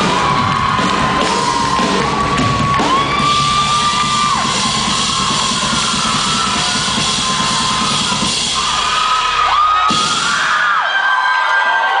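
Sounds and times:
crowd screaming and whooping: 0.0 - 12.0.

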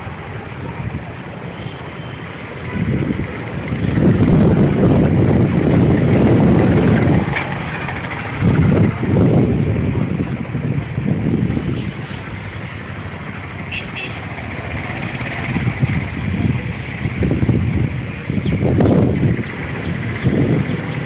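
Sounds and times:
wind buffeting microphone: 0.0 - 1.6, 2.2 - 21.0.

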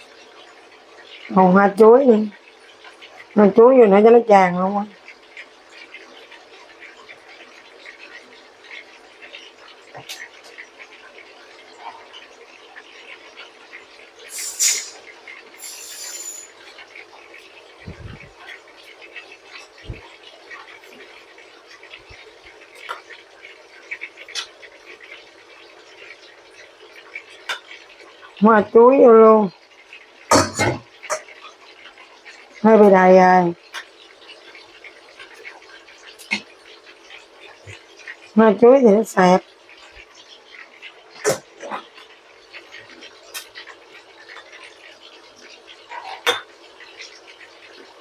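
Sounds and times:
induction cooktop hum: 0.0 - 48.0
short loud hisses: 14.3 - 15.0.

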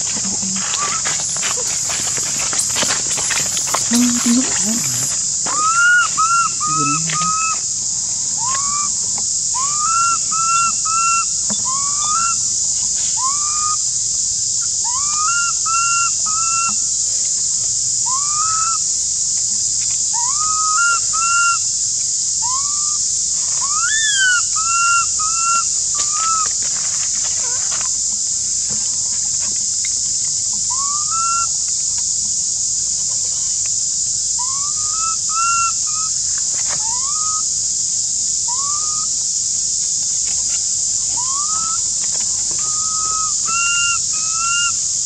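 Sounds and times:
high insect drone: 0.0 - 45.0
baby monkey crying coos: 0.4 - 7.6.

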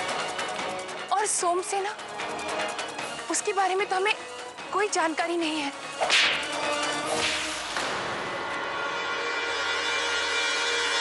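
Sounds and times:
whip-like swish effects: 6.0 - 7.8.

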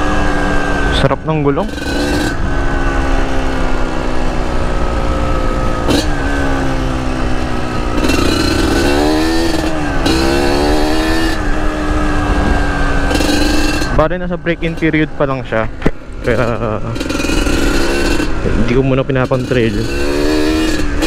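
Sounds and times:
low wind rumble: 0.0 - 21.0
two-stroke motorcycle engine running: 0.0 - 21.0.

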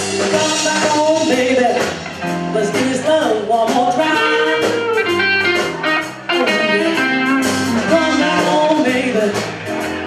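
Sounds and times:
electric guitar: 0.0 - 10.0
live band playing blues: 0.0 - 10.0
person singing: 0.0 - 10.0.

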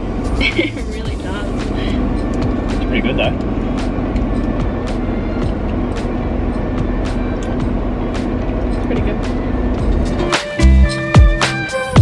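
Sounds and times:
vehicle cabin noise: 0.0 - 10.9.

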